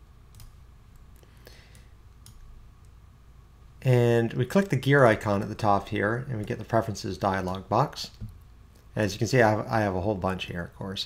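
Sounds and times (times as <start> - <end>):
low room hum: 0.0 - 11.0
computer mouse clicks: 0.3 - 3.0.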